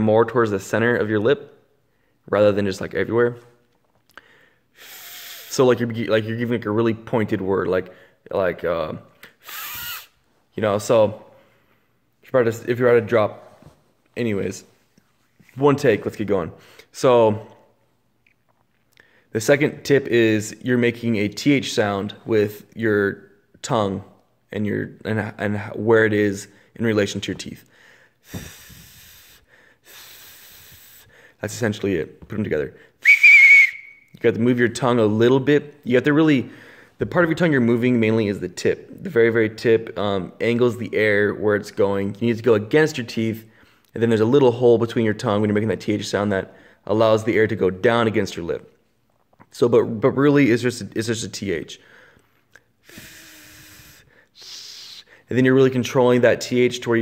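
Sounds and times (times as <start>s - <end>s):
man blowing breathy hiss: 4.2s - 5.6s, 9.4s - 10.1s, 27.8s - 31.4s, 52.8s - 55.3s
faint thin whistle tone: 33.0s - 34.2s.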